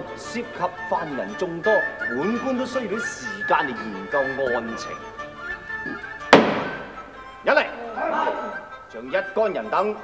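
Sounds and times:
background music: 0.0s - 10.0s
wooden gavel slam: 6.3s - 7.1s.

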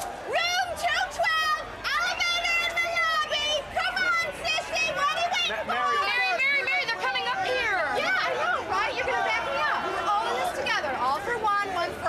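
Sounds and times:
woman yelling taunts: 0.3s - 10.8s.

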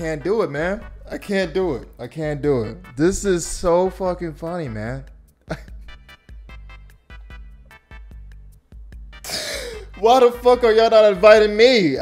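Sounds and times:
man wheezing laughter: 5.5s - 6.0s, 9.2s - 9.9s
man sighing: 9.2s - 10.0s.

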